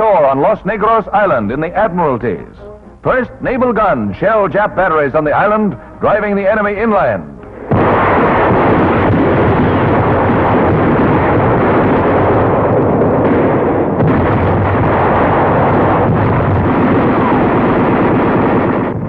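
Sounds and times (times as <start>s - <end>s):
gunfire and shell explosions: 3.6s - 19.0s.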